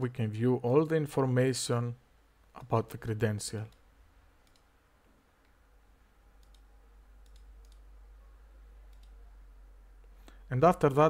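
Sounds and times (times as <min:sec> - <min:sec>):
low room hum: 0:00.0 - 0:11.0
computer mouse clicks: 0:03.7 - 0:04.7, 0:06.4 - 0:07.9, 0:08.9 - 0:09.2.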